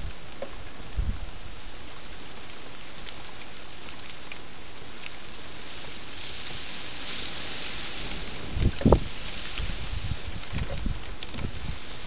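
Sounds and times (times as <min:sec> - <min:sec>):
wind buffeting microphone: 0:00.0 - 0:01.4, 0:06.1 - 0:12.0
microphone hiss: 0:00.0 - 0:12.0.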